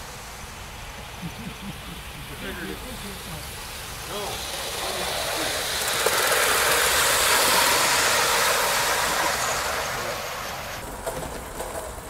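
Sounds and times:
hiss of steam: 0.0 - 12.0
wheels on rail: 0.0 - 12.0.

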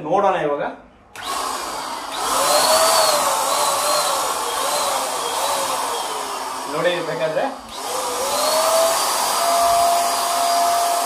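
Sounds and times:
paint sprayer blower hissing: 1.2 - 11.0.

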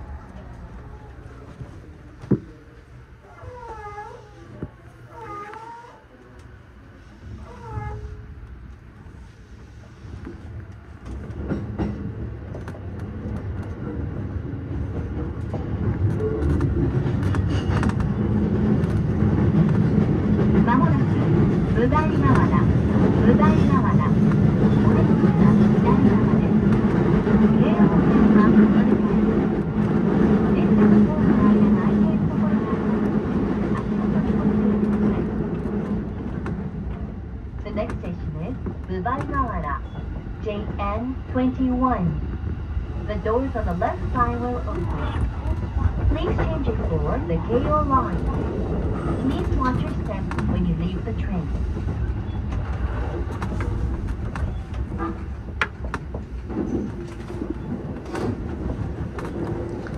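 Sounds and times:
muffled announcement voice: 20.6 - 35.7, 37.6 - 42.2, 43.0 - 51.7.

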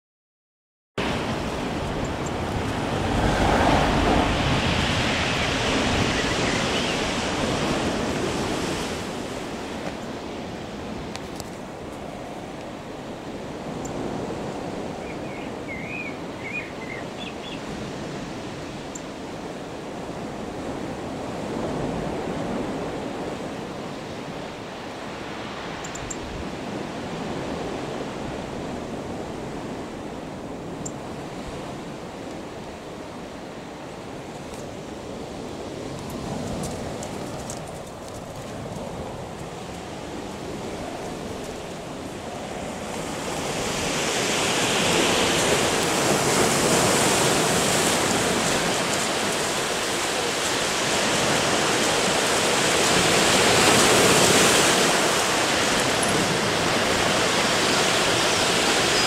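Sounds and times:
wind rushing: 1.0 - 9.6
distant sea surf: 1.0 - 59.0
bird chirps: 15.0 - 17.6.

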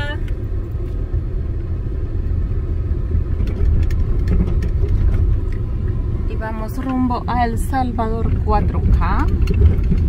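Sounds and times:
car engine and tyres rumbling: 0.0 - 10.0
faint clicks and rattles: 3.3 - 6.0, 7.7 - 10.0.

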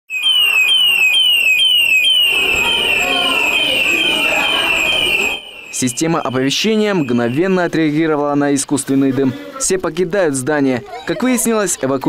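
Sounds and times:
fire alarm siren whooping: 0.1 - 7.6
children's voices: 2.1 - 7.4, 10.7 - 12.0.

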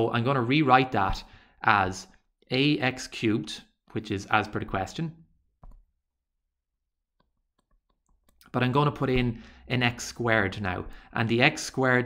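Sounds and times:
stylus tapping tablet screen: 5.6 - 5.9.

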